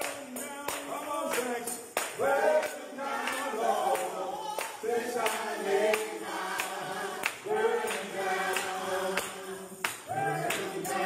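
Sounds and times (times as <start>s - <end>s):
male vocal group singing: 0.0s - 11.0s
sharp rhythmic hits: 0.0s - 11.0s.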